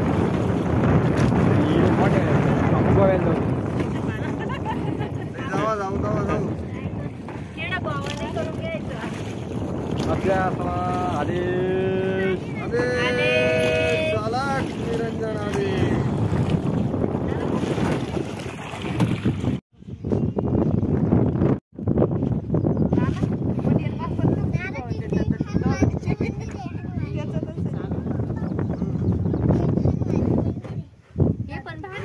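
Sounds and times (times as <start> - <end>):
wind buffeting microphone: 0.0 - 32.0
people shouting: 12.2 - 14.6.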